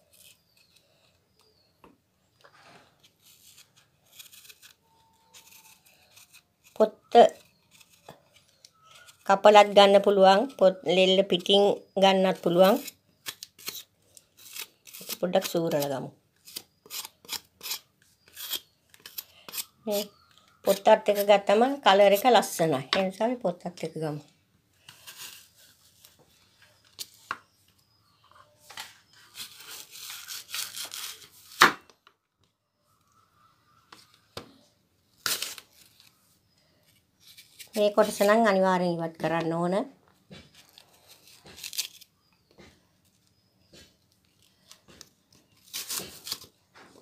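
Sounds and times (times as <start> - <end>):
knife peeling apple: 0.0 - 1.7, 2.9 - 10.1, 11.4 - 22.6, 24.8 - 26.1, 29.0 - 31.9, 35.2 - 38.5, 40.5 - 42.7, 43.3 - 46.5
person speaking: 15.0 - 16.2, 19.8 - 24.3, 37.7 - 40.0.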